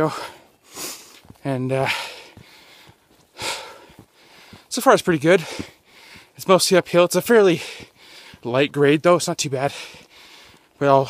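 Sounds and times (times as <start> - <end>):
man breathing heavily: 0.0 - 8.5, 9.4 - 10.8.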